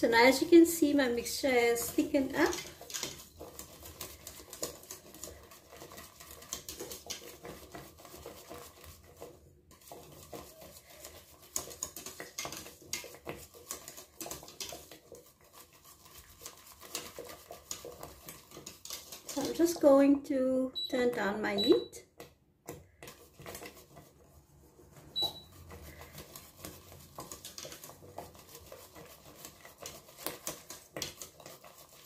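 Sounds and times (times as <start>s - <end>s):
wire whisk scraping a metal pot: 0.0s - 20.2s, 22.9s - 32.0s.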